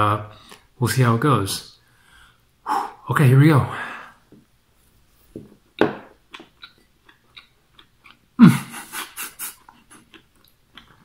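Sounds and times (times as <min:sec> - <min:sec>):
man chewing food: 0:05.5 - 0:11.0
wet mouth clicks and smacks: 0:06.3 - 0:08.2.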